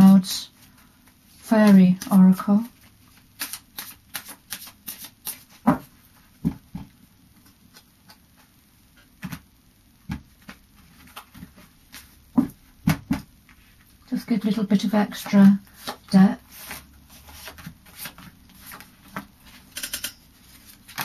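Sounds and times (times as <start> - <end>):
cards being shuffled: 1.4 - 5.9, 10.1 - 12.2, 15.1 - 19.7, 20.4 - 21.0.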